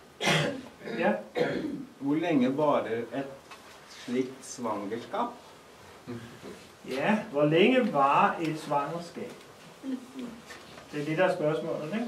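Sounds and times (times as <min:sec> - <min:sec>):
person coughing: 0:00.2 - 0:01.9.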